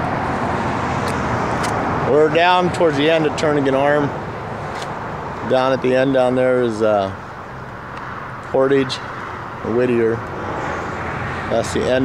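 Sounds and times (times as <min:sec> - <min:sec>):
road traffic rushing: 0:00.0 - 0:12.0.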